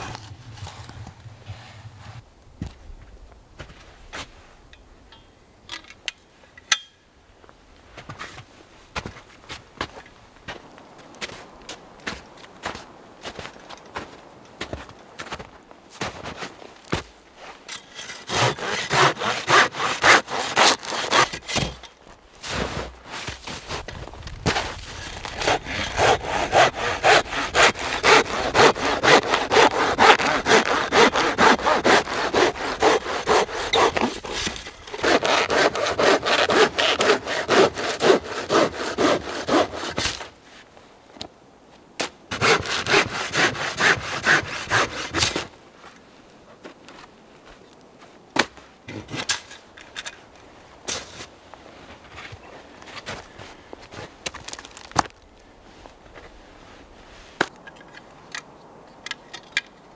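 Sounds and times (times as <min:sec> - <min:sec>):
hand saw cutting log: 0:17.7 - 0:21.8, 0:24.6 - 0:40.3, 0:42.3 - 0:45.5.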